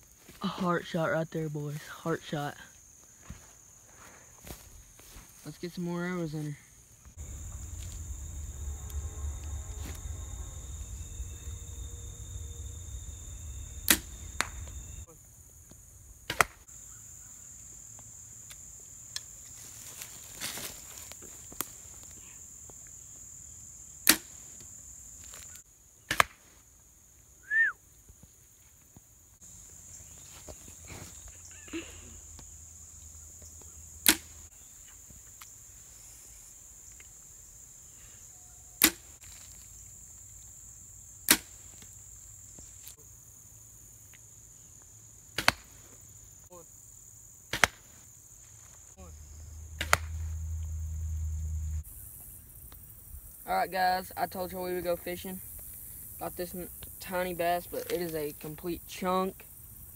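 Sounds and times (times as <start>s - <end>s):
high insect drone: 0.0s - 26.0s, 26.8s - 59.9s
bow shooting arrows: 7.2s - 15.0s, 16.3s - 16.6s, 24.0s - 24.3s, 34.0s - 34.5s, 38.8s - 39.4s, 41.3s - 41.9s, 45.4s - 45.8s, 47.5s - 47.9s, 49.7s - 50.4s.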